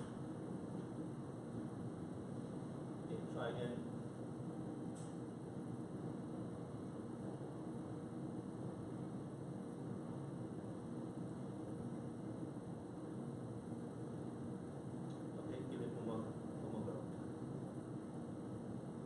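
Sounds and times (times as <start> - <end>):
low hum and hiss: 0.0 - 19.0.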